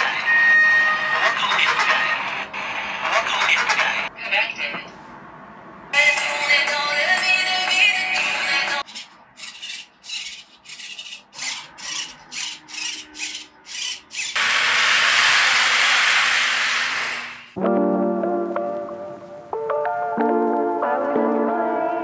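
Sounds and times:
background music: 0:06.0 - 0:08.8, 0:17.6 - 0:22.0.

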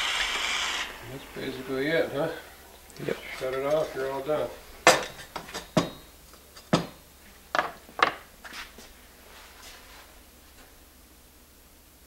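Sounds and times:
sharp metal knocks: 0:04.9 - 0:07.0.

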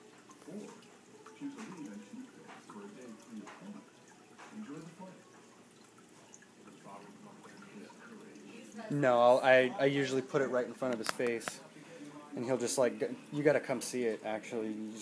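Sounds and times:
water dripping: 0:00.0 - 0:11.7
faint voices talking: 0:00.2 - 0:15.0.

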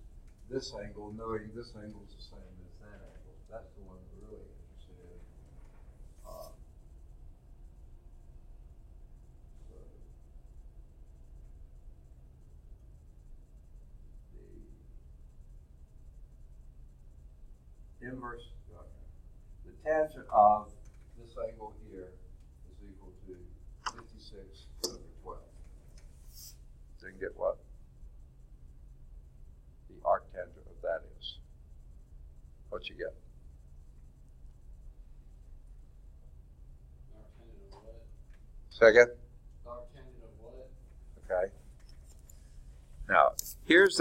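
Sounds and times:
steady low hum: 0:00.0 - 0:44.0
man's voice: 0:43.1 - 0:44.0.

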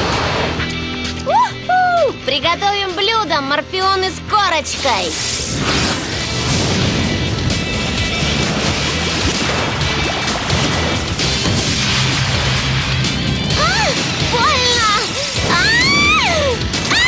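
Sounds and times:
cartoon fire blast and crash: 0:00.0 - 0:00.8, 0:04.7 - 0:17.0
dramatic action music: 0:00.0 - 0:17.0.

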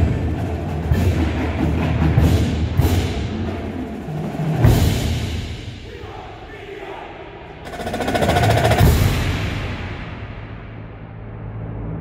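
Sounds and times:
fast drum roll: 0:07.6 - 0:10.2
heavy low drum hit: 0:07.6 - 0:10.6.

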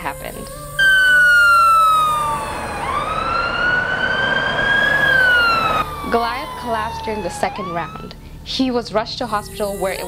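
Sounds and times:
ambulance siren wailing: 0:00.8 - 0:08.2.

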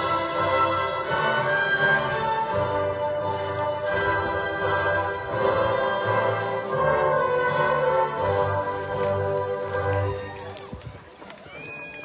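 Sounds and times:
orchestral music: 0:00.0 - 0:11.8.

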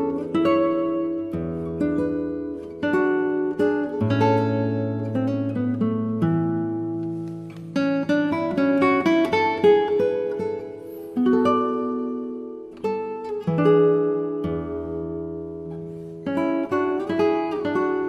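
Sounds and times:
acoustic guitar playing calm music: 0:00.0 - 0:18.0.

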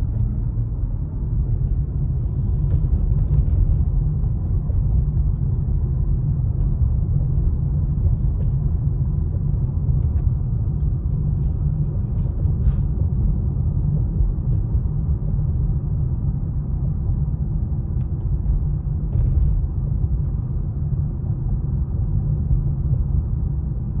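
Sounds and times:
car driving heard from inside: 0:00.0 - 0:24.0.

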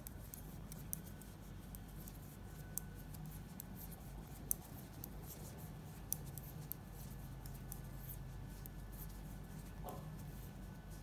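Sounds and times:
knitting needles clicking: 0:00.0 - 0:09.7.

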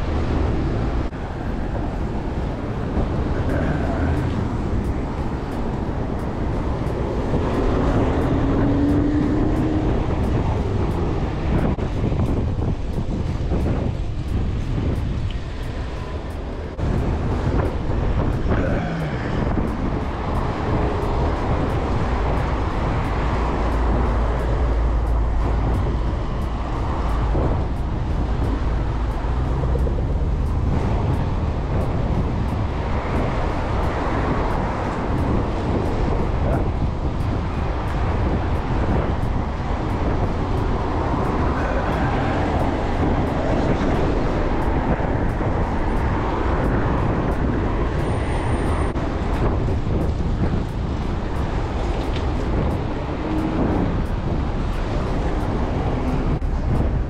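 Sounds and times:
city traffic noise: 0:00.0 - 0:57.0
wind rumble on microphone: 0:00.0 - 0:57.0.

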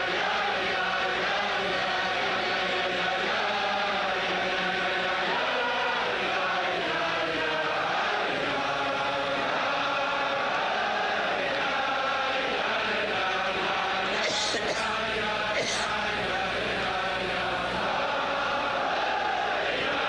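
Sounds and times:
crowd of men singing in unison: 0:00.0 - 0:20.0.

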